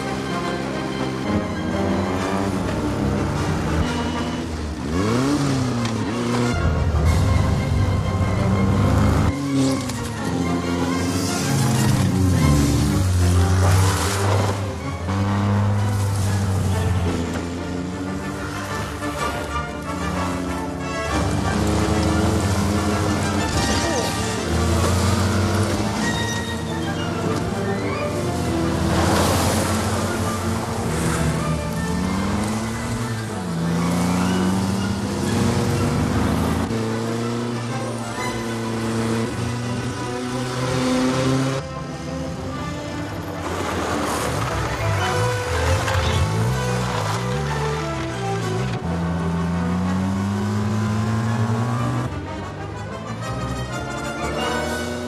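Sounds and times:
film score with held notes: 0.0 - 55.0
motorcycle engines: 0.0 - 55.0
orchestral music: 0.0 - 55.0.

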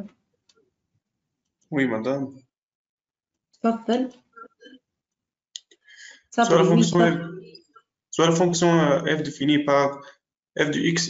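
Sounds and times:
broken voice fragments: 1.7 - 2.3, 6.0 - 7.6, 8.2 - 11.0
woman speaking hesitantly: 3.7 - 4.1, 6.4 - 7.5.

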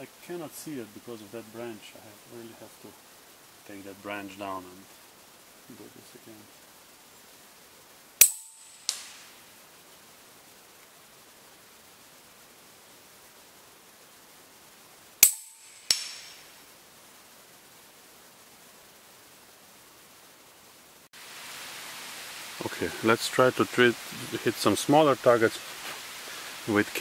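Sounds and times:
slug striking metal target: 8.2 - 9.2, 15.2 - 16.4.

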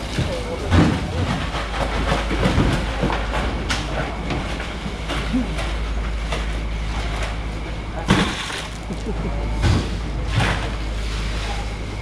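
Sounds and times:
fish ice and bins clattering: 0.0 - 12.0
low engine hum: 0.0 - 12.0.

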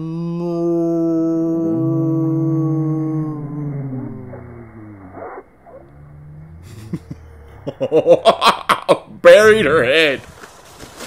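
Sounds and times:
slowed-down voice: 0.0 - 9.7
man laughing: 6.6 - 9.2.

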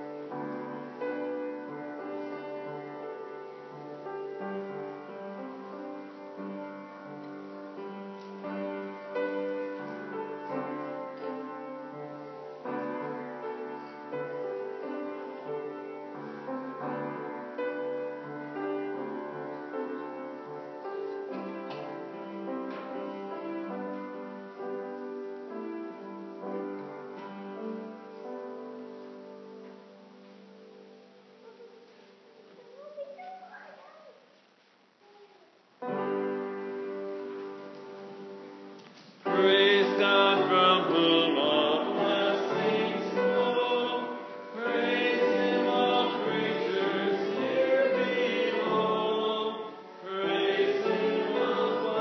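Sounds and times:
group singing a hymn: 39.2 - 52.0.

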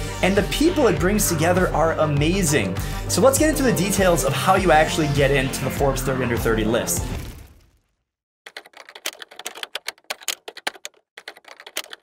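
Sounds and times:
rapid typing on a keyboard: 8.5 - 12.0.

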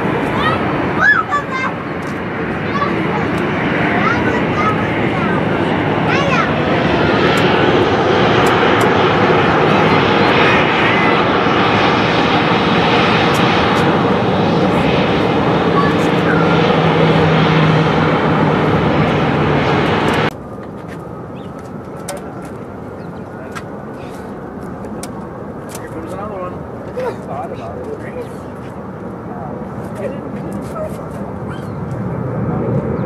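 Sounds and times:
jet engines roaring on runway: 0.0 - 33.0.

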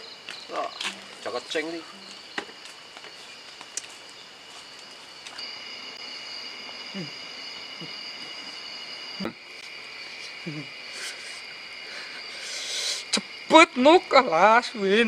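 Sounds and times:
crickets chirring: 0.0 - 15.0.

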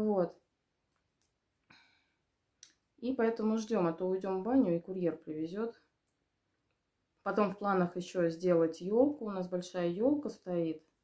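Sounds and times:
woman breathing softly: 1.6 - 2.3.

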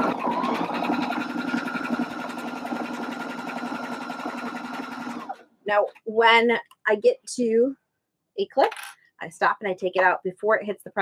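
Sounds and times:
sewing machine stitching: 0.0 - 5.4.

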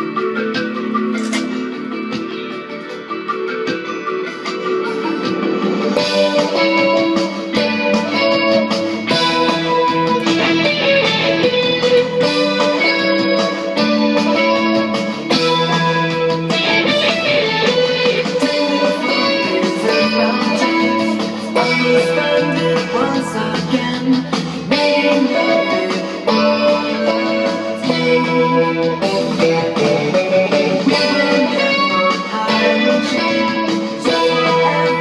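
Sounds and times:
electric guitar through amplifier: 0.0 - 35.0
bass notes: 5.9 - 24.7.

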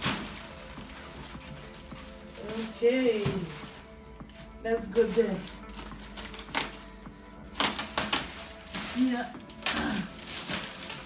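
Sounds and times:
plastic wrapping crinkling: 0.0 - 11.0
quiet background music: 0.0 - 11.0.

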